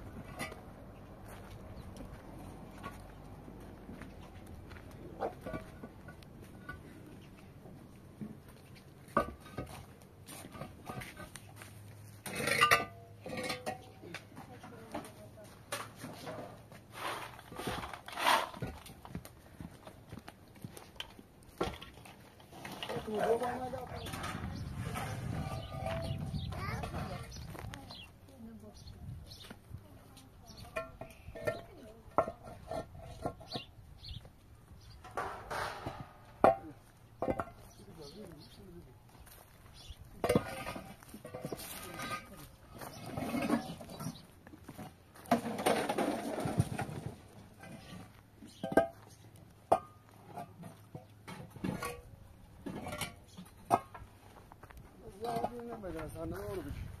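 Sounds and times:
voices talking: 22.7 - 32.4, 37.6 - 39.0.

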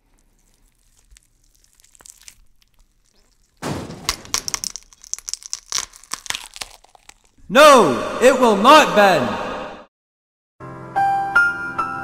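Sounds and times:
phone cracking and crunching in vise: 1.5 - 7.4.

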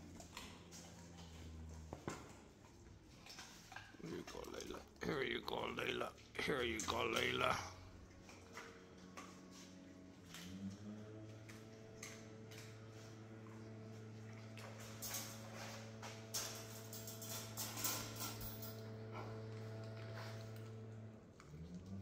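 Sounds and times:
dogs crunching bones: 0.0 - 13.6.

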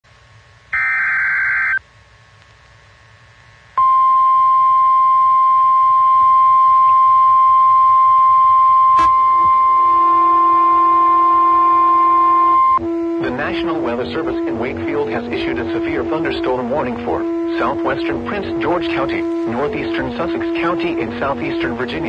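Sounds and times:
steady alarm tone: 0.7 - 1.8, 3.8 - 22.0.

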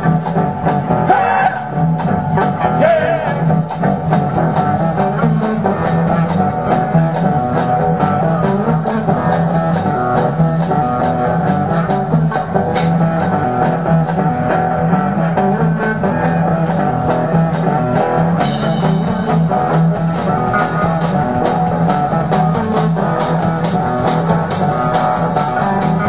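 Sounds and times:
blues-rock band playing: 0.0 - 26.0.

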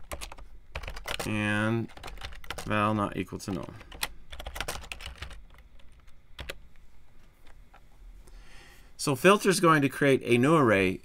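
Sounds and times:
typing on computer keyboard: 0.0 - 2.8, 3.4 - 6.6.

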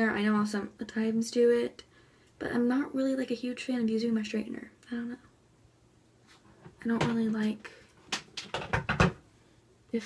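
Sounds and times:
person speaking: 6.8 - 7.9.

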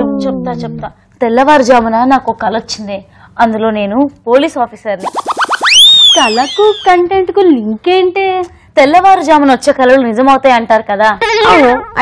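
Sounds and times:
woman speaking: 0.0 - 5.0, 6.2 - 12.0
cartoon swoop sound effect: 5.0 - 6.9
rising whistle-like glide: 5.0 - 6.9.

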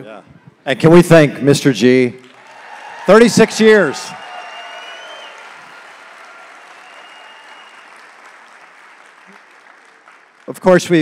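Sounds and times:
audience applauding: 2.3 - 11.0.

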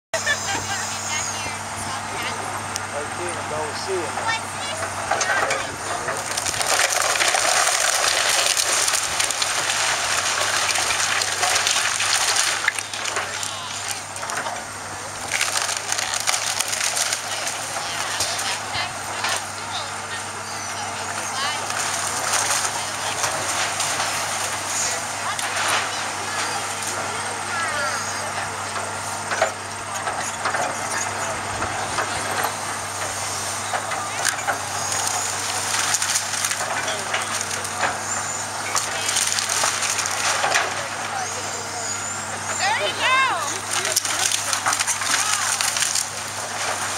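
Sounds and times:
diesel engine running: 0.1 - 46.9
timber cracking and crashing: 3.6 - 19.6, 21.0 - 41.7, 42.3 - 46.9.

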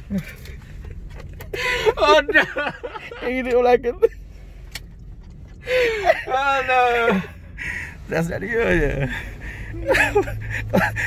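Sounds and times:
low rumble inside car: 0.0 - 11.0.

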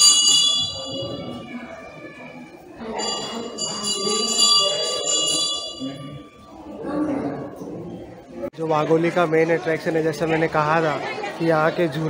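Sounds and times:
metal bell ringing: 0.0 - 1.6, 2.8 - 6.4.

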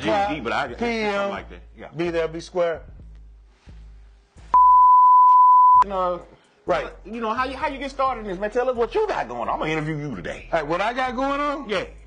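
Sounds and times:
man's voice: 0.0 - 2.9, 5.8 - 12.0
high-pitched censor beep: 4.6 - 5.8.

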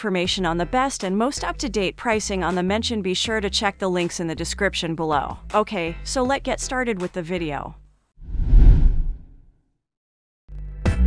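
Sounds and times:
whoosh sound effect: 8.2 - 9.4.

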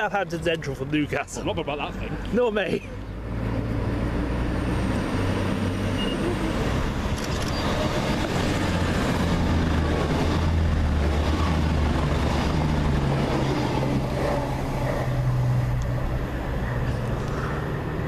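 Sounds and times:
diesel train engine drone: 0.0 - 18.0
train wheels rumbling on rails: 5.0 - 18.0.

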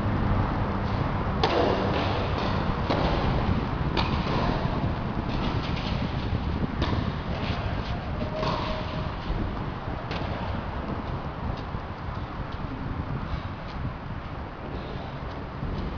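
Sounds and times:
steady background hum: 0.0 - 15.9
tennis ball bouncing: 1.4 - 12.8
tennis racket hitting ball: 1.4 - 13.8.

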